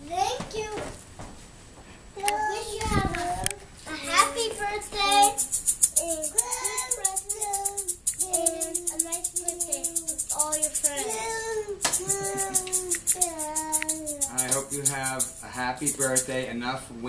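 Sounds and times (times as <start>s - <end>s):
young children singing: 2.2s - 16.4s
maraca shaking: 2.5s - 16.6s.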